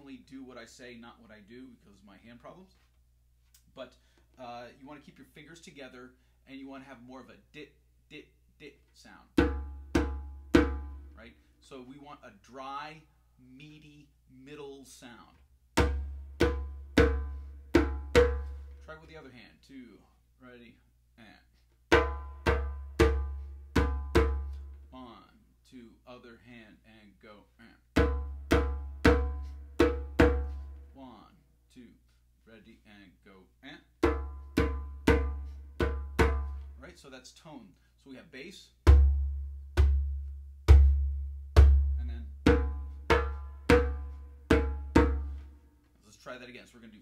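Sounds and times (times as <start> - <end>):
djembe bass strokes: 34.0 - 36.8, 38.9 - 45.5.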